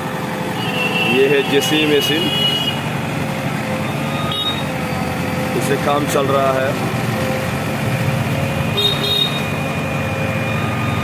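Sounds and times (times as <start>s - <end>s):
diesel engine running: 0.0s - 11.0s.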